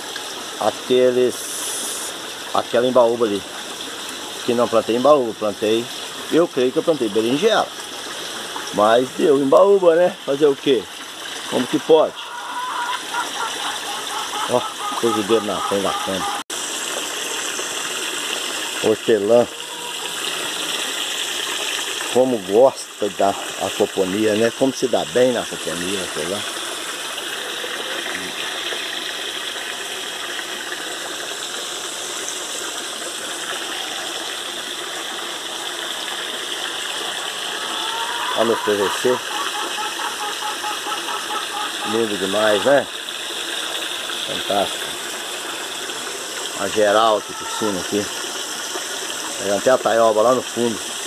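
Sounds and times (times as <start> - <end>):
running water rushing: 0.0 - 51.0.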